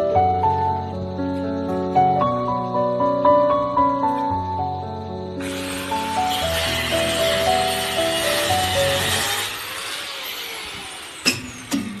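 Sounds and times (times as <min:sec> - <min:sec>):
grinder motor winding down: 0:05.4 - 0:12.0
sharp metallic knocks: 0:11.2 - 0:12.0.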